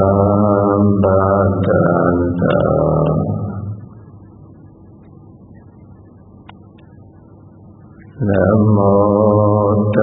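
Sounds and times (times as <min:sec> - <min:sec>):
man chanting: 0:00.0 - 0:03.9, 0:08.1 - 0:10.0.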